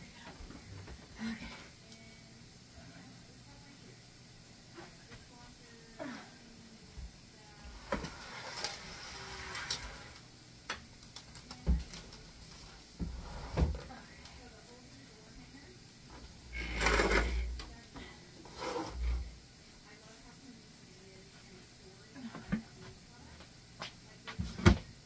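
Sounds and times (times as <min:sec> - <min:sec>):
scraping and rustling: 0:07.7 - 0:10.2, 0:18.4 - 0:19.3.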